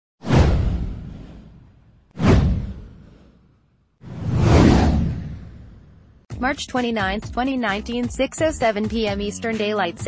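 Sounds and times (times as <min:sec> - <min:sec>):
whoosh sound effect: 0:00.2 - 0:06.2
deep rumble: 0:04.0 - 0:06.2.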